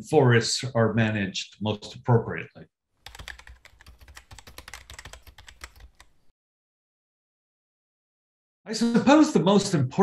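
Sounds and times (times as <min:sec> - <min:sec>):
computer keyboard typing: 0:03.0 - 0:06.2.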